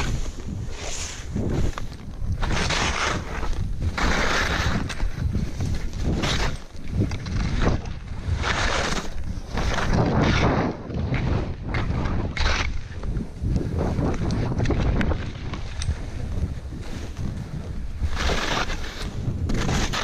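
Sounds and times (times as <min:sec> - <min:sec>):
skis scraping through snow: 0:00.0 - 0:20.0
wind rumble on microphone: 0:00.0 - 0:20.0.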